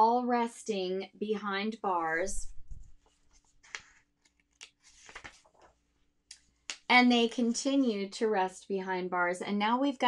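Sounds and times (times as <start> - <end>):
paper pages rustling: 2.7 - 5.9
page scrapes: 3.1 - 4.1.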